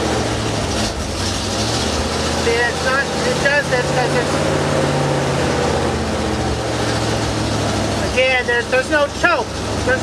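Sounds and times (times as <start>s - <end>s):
pickup truck engine running: 0.0s - 10.0s.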